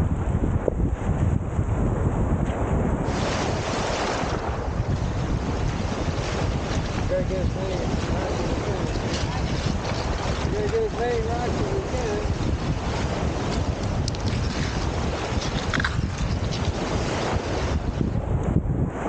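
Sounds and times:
wind buffeting microphone: 0.0s - 19.0s
waves washing over pebbles: 3.0s - 18.2s.

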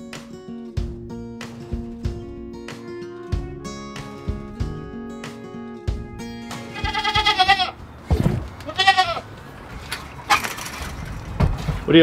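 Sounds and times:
acoustic guitar music: 0.0s - 11.3s
goat bleating: 6.7s - 7.8s, 8.6s - 9.3s.

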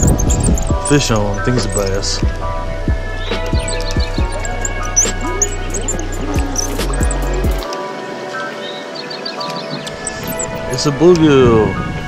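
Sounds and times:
background music of held tones: 0.0s - 12.0s.

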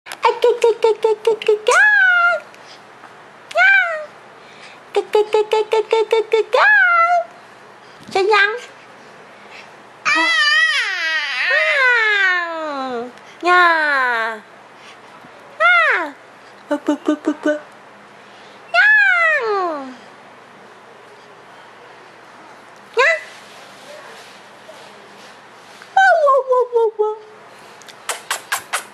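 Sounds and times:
baby squealing: 10.1s - 12.1s.

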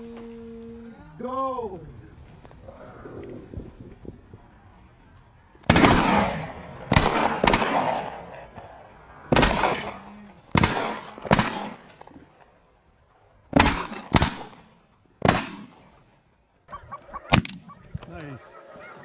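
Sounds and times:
shotgun shots: 5.6s - 8.6s, 9.3s - 12.0s, 13.5s - 16.0s.

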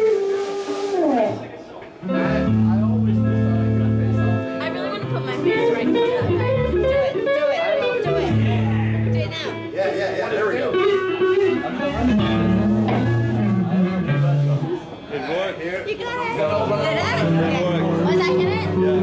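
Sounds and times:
long held bass guitar notes: 2.0s - 9.7s, 10.8s - 15.0s, 16.5s - 19.0s
electric guitar lead lines: 2.0s - 19.0s.

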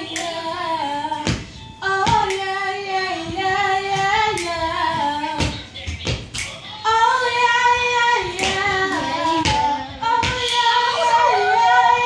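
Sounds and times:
girl singing unaccompanied: 0.0s - 6.0s, 6.8s - 12.0s.

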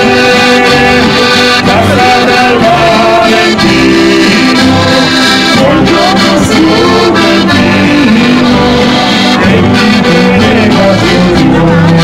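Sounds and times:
accordion playing a tune: 0.0s - 12.0s.

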